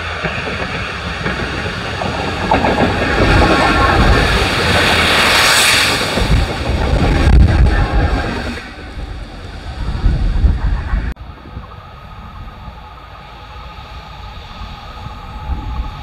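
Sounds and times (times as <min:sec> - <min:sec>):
diesel locomotive engine: 0:00.0 - 0:16.0
wagons rumbling over rails: 0:00.0 - 0:16.0.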